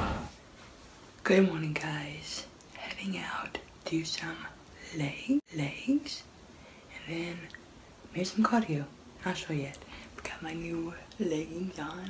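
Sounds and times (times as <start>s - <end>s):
woman speaking quietly: 6.9s - 12.0s.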